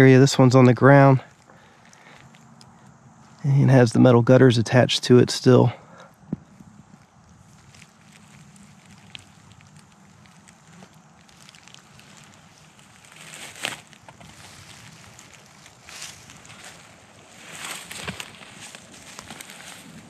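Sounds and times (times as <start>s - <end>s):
faint outdoor hiss: 0.0s - 20.0s
footsteps in dry pine needles: 1.3s - 3.5s, 6.5s - 20.0s.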